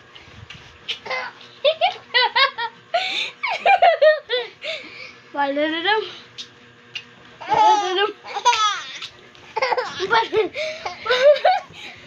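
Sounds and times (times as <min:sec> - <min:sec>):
baby laughing: 0:00.9 - 0:02.0, 0:07.4 - 0:11.7.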